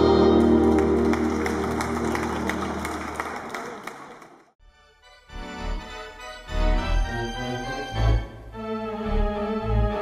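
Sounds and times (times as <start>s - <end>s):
handclapping: 0.4s - 4.5s
organ chord: 4.6s - 10.0s.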